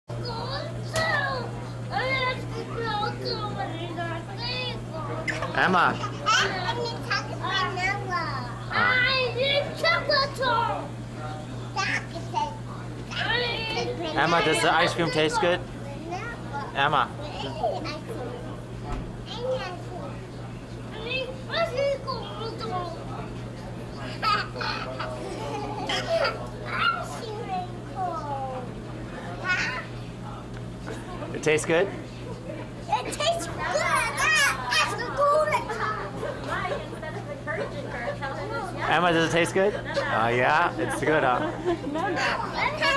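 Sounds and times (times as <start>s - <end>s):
toddlers babbling: 0.1s - 10.9s, 11.8s - 18.4s, 24.0s - 28.6s, 29.3s - 30.0s, 32.9s - 37.2s, 42.0s - 42.9s
steady low hum: 0.1s - 42.9s.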